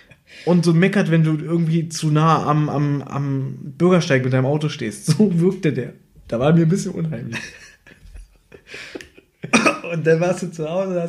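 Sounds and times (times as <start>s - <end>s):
man speaking: 0.4s - 7.6s, 8.8s - 11.0s
man coughing: 8.9s - 10.0s.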